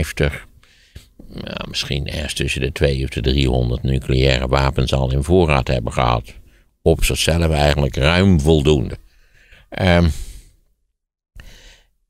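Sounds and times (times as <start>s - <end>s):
faint breath in: 0.6s - 1.2s, 6.4s - 6.8s, 9.0s - 10.6s, 11.4s - 12.0s.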